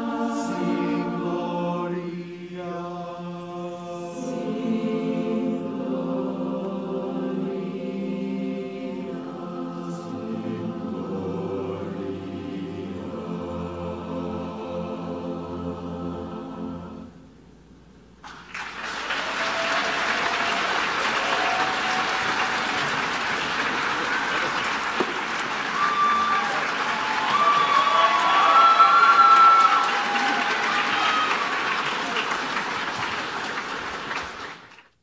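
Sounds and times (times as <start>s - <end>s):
audience applauding: 18.2s - 35.0s
voices cheering: 18.8s - 33.4s.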